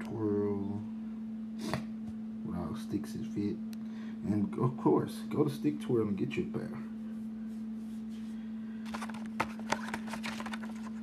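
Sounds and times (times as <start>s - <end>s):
steady low hum: 0.0s - 11.0s
plastic packaging crinkling: 8.8s - 11.0s.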